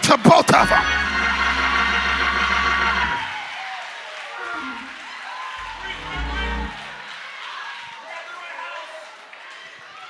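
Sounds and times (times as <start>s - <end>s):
sustained keyboard chord: 0.6s - 3.2s, 5.6s - 7.0s.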